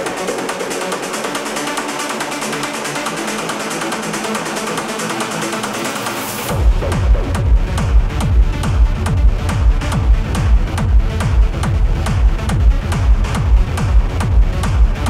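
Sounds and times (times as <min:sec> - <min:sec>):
techno music: 0:00.0 - 0:15.0
deep bass: 0:06.5 - 0:15.0
steady kick drum: 0:06.5 - 0:15.0.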